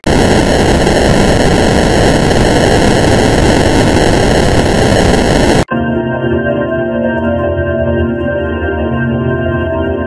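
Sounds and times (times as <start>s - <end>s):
harsh distorted static noise: 0.0s - 5.7s.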